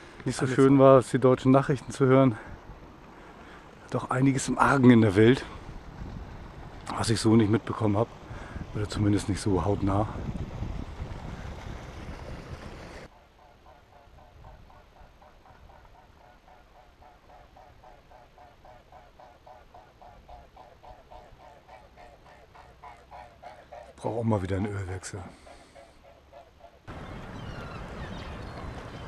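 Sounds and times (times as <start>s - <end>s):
wind and water rushing: 0.0s - 13.2s, 26.9s - 29.0s.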